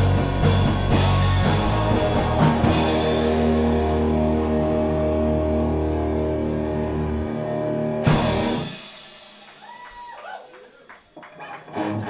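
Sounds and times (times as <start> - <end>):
electric guitars and bass chord: 0.0 - 9.0.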